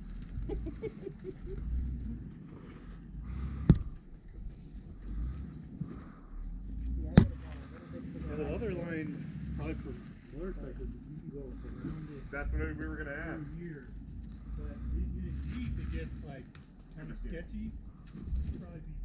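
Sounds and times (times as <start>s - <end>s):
low uneven rumble: 0.0s - 19.0s.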